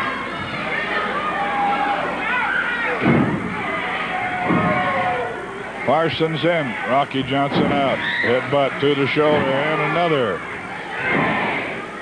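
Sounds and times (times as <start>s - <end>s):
audience shouting: 0.0s - 5.5s, 8.0s - 12.0s.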